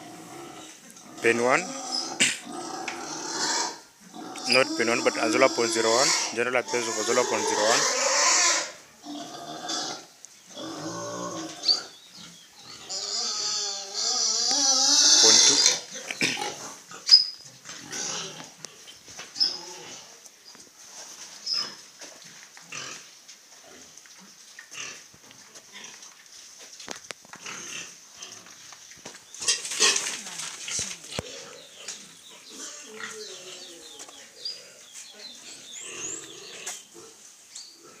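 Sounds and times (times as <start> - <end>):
farm animals calling: 0.0 - 20.3, 27.4 - 38.0.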